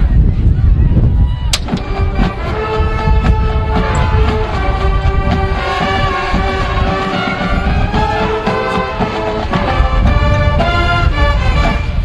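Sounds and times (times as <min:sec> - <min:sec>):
marching band holding notes: 0:01.6 - 0:12.0.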